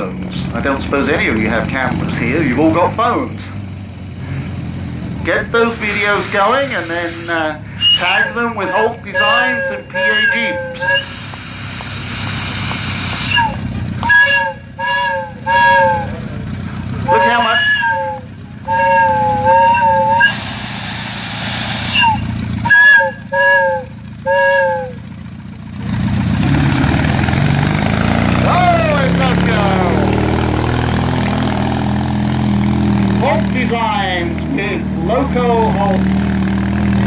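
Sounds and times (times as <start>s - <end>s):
vehicle running rumble: 0.0s - 37.0s
steam hissing: 5.7s - 16.2s, 17.4s - 23.7s
steam whistle toots: 5.8s - 16.4s, 17.0s - 25.2s.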